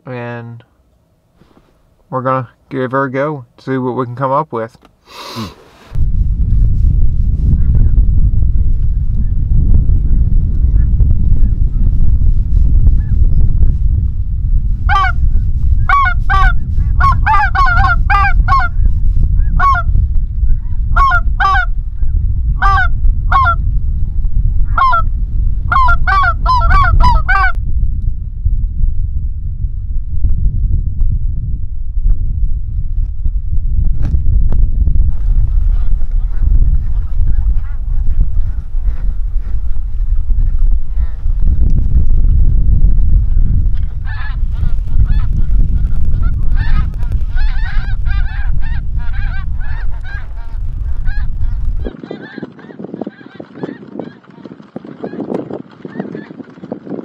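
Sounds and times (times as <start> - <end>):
wind buffeting microphone: 5.9 - 57.0
goose honks: 19.6 - 19.9, 46.2 - 54.2.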